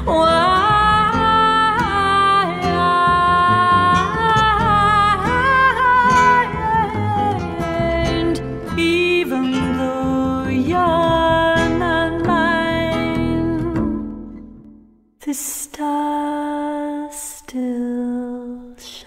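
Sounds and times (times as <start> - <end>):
woman singing wordless melody: 0.0 - 14.4, 15.2 - 19.0
jazz guitar and bass: 0.0 - 14.8.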